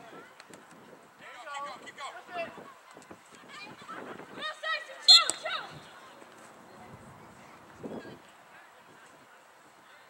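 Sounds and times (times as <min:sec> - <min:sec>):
referee's whistle blown: 0:05.1 - 0:05.5.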